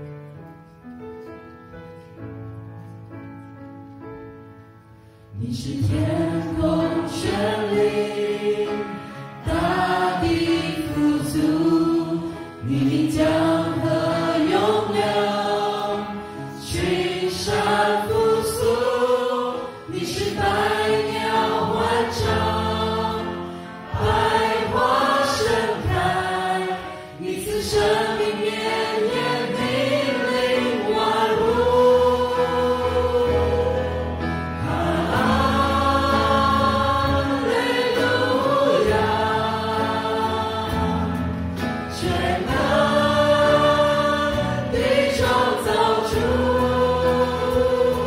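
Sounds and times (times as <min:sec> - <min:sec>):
singers: 0:05.4 - 0:48.0
worship band playing: 0:05.7 - 0:48.0.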